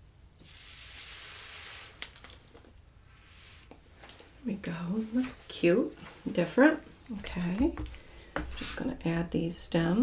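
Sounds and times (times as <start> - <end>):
air blown through straw: 0.4 - 2.1.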